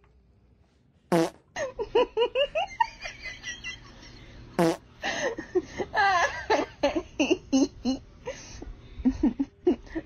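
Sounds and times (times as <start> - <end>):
fart sound: 1.1 - 1.5, 4.6 - 4.8.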